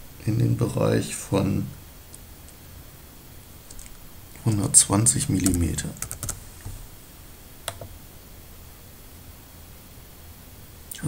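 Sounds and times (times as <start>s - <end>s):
computer keyboard keystrokes: 5.4s - 6.4s, 7.7s - 7.9s.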